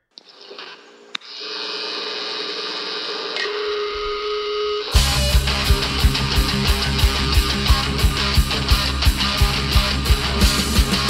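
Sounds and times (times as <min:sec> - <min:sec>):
drone of held tones: 0:02.6 - 0:08.0
heavy guitar rock music: 0:04.8 - 0:11.0.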